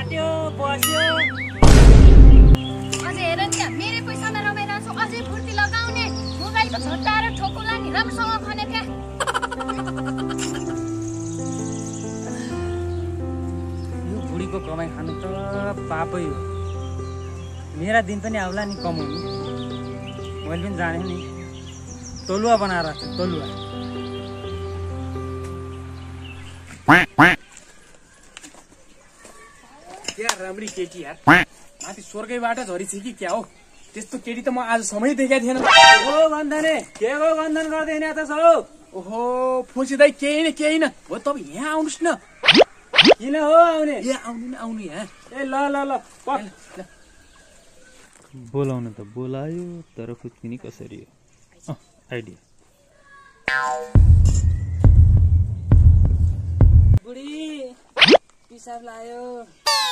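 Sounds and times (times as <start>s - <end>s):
deep throbbing bass: 1.6s - 2.6s, 54.0s - 57.0s
quack-like calls: 26.9s - 27.4s, 31.3s - 31.5s, 35.6s - 36.2s, 59.7s - 59.9s
sharp clicks: 42.4s - 43.2s.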